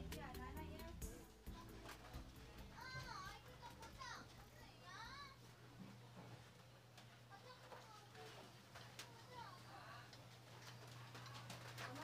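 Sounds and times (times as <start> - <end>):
distant children's voices: 1.4 - 12.0.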